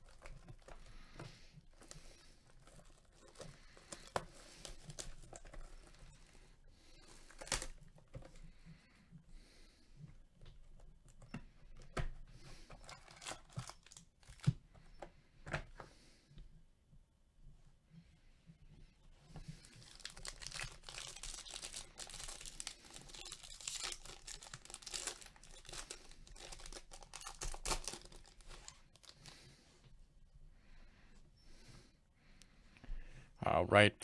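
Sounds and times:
plastic wrap crinkling: 0:00.0 - 0:08.2, 0:12.7 - 0:14.6, 0:19.4 - 0:29.5.

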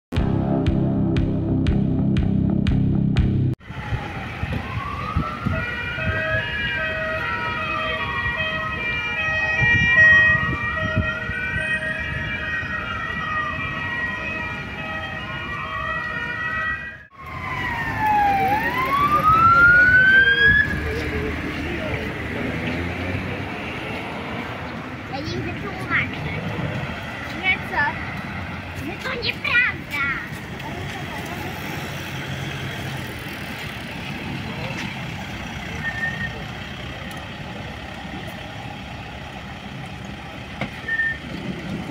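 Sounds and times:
traffic noise: 0:03.5 - 0:41.9
electronic wail siren: 0:03.6 - 0:21.5.

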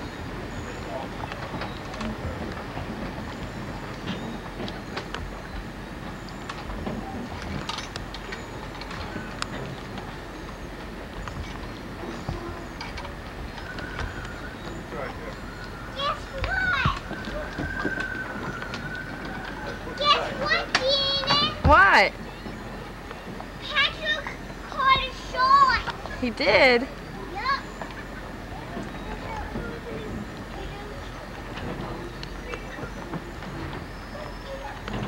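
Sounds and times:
children calling out: 0:15.7 - 0:22.8, 0:23.6 - 0:26.1.

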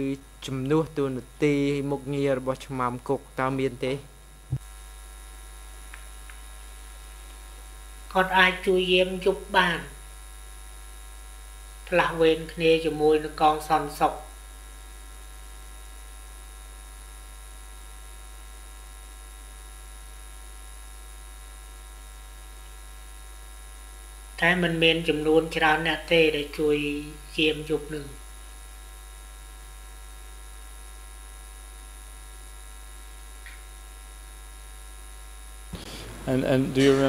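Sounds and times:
person speaking: 0:00.0 - 0:04.1, 0:35.8 - 0:37.0
electrical mains hum: 0:00.0 - 0:37.0.

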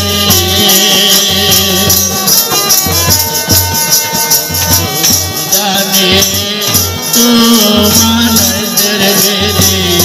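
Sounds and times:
drum strokes: 0:00.0 - 0:10.0
rattling percussion: 0:00.0 - 0:10.0.

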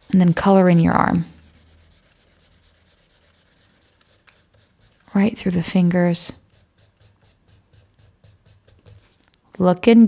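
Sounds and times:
felt-tip marker scratching on paper: 0:00.0 - 0:09.3.

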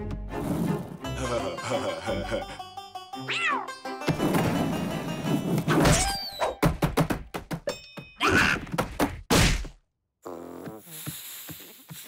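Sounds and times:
music: 0:00.0 - 0:07.1
cartoon cat crying: 0:03.3 - 0:03.7.

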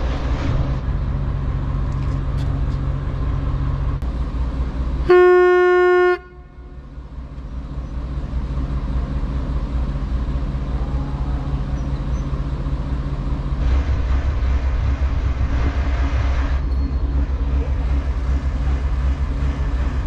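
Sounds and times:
boat engine running: 0:00.0 - 0:20.0
horn blast: 0:05.1 - 0:06.8.

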